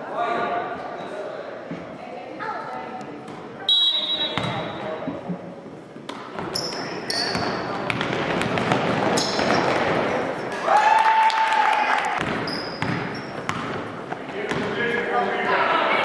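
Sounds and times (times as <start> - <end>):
sneaker squeaks: 3.7 - 4.9, 6.4 - 7.9, 9.1 - 10.6, 12.2 - 13.8
basketball bouncing on floor: 4.4 - 4.7, 7.3 - 10.1, 12.2 - 14.7.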